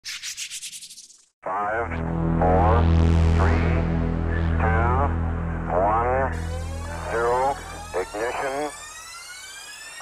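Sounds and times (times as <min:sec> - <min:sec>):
person counting down: 0:01.5 - 0:08.7
low steady drone: 0:01.5 - 0:09.0.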